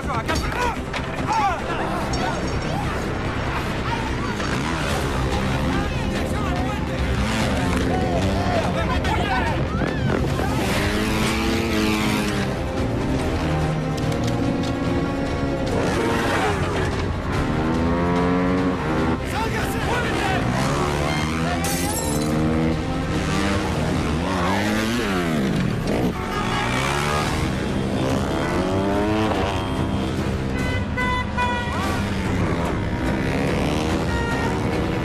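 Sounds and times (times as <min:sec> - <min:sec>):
motorcycle engines revving: 0:00.0 - 0:35.0.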